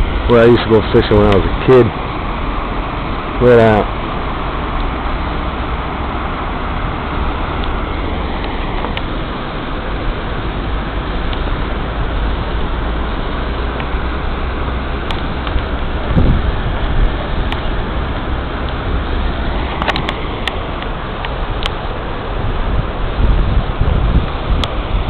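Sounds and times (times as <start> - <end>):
water rushing over weir: 0.0 - 25.0
wind rumbling on microphone: 0.0 - 25.0.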